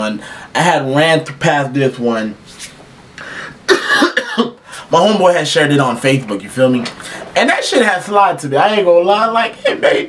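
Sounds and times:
man inhaling: 0.2s - 0.5s, 3.2s - 3.7s
man coughing: 3.6s - 4.7s.

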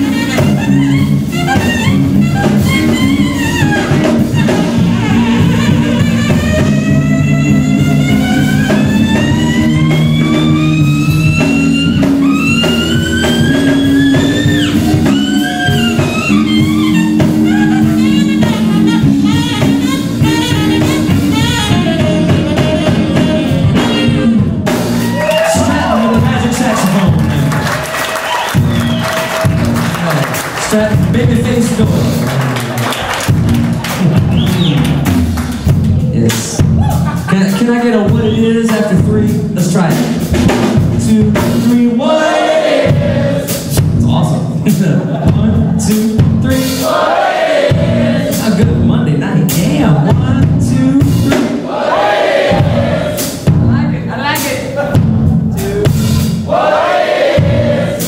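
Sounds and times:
bass and drums: 0.0s - 58.0s
choppy guitar notes: 0.0s - 58.0s.

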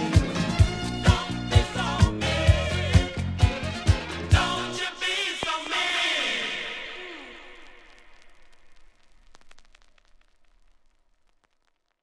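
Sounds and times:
record music winding down: 0.0s - 10.7s.

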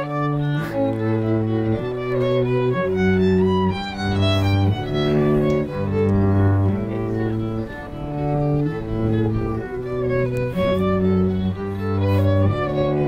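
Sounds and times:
violin and cello playing: 0.0s - 13.0s.

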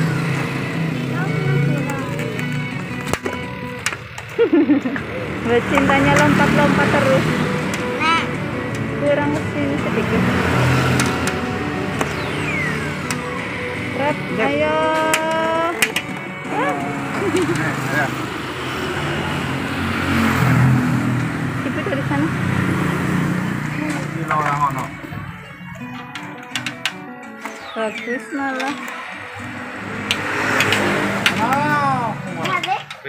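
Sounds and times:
electronic game music: 10.0s - 19.3s, 23.6s - 32.5s
falling electronic tone: 10.8s - 14.9s
electronic jingle: 11.5s - 14.9s, 27.4s - 32.3s
sharp clicks: 26.1s - 31.6s.

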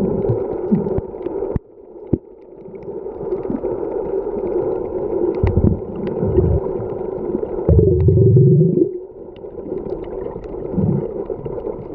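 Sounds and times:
low underwater hiss: 0.0s - 11.9s
sharp underwater clicks: 5.3s - 6.6s, 7.7s - 8.3s
low rumbling bursts: 5.4s - 7.0s, 7.7s - 9.0s.

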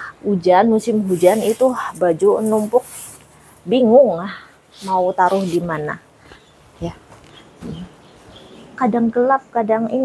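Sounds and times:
woman speaking: 0.0s - 6.1s, 6.8s - 8.0s, 8.8s - 10.0s.

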